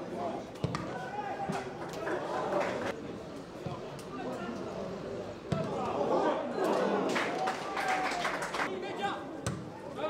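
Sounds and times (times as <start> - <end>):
players shouting: 0.3 - 2.9, 5.5 - 10.0.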